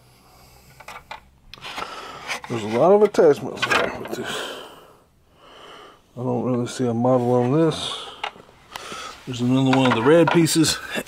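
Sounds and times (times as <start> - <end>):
plastic attachments clicking and knocking: 2.3 - 4.2, 9.7 - 10.7.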